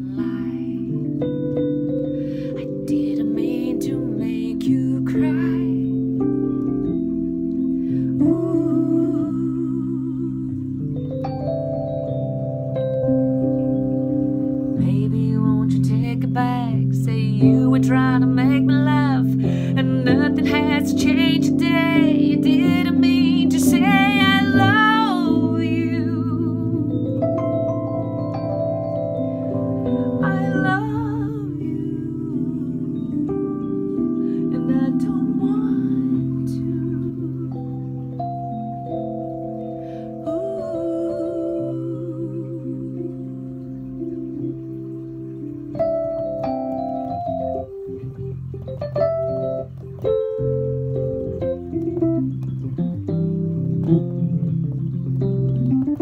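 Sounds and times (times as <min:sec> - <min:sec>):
woman singing a slow ballad: 0:00.0 - 0:06.4, 0:07.7 - 0:11.6, 0:14.8 - 0:27.6, 0:29.6 - 0:39.1, 0:39.8 - 0:44.1
piano chords: 0:00.0 - 0:56.0.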